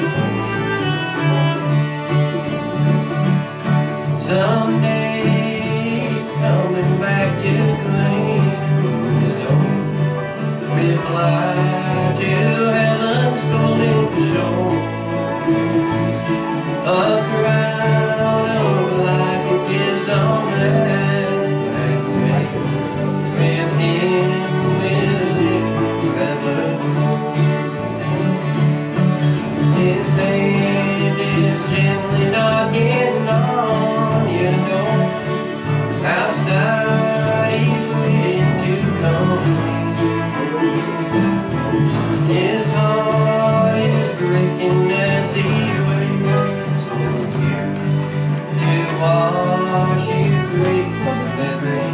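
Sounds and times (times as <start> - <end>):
fiddle: 0.0 - 51.9
strummed acoustic guitars: 0.0 - 51.9.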